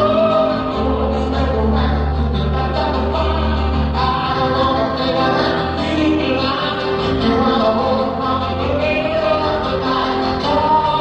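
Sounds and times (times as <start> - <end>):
man singing: 0.0 - 11.0
piano: 0.0 - 11.0.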